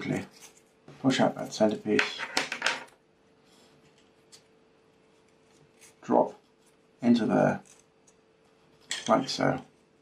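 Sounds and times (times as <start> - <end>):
man speaking: 0.0 - 0.3, 1.0 - 2.2, 6.0 - 6.4, 7.0 - 7.6, 9.0 - 9.7
faint steady hum: 0.0 - 10.0.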